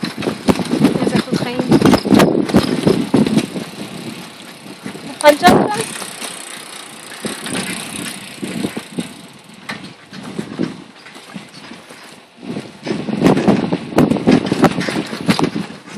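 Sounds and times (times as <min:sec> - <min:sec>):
bicycle rattling along: 0:00.0 - 0:15.9
wind buffeting microphone: 0:00.0 - 0:15.9.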